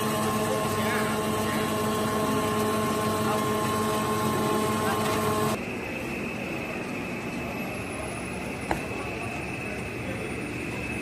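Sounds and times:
machine drone with high tone: 0.0 - 11.0
machinery multi-toned hum: 0.0 - 11.0.

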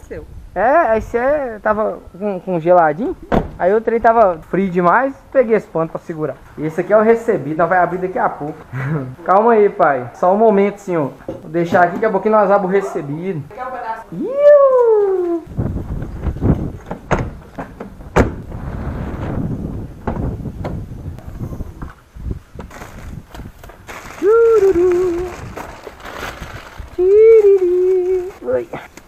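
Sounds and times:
boxes and bags rustling and knocking: 22.6 - 29.0.

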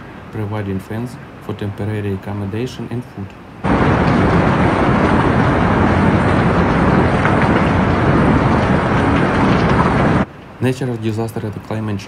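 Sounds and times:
floodwater torrent rushing: 0.0 - 12.0.

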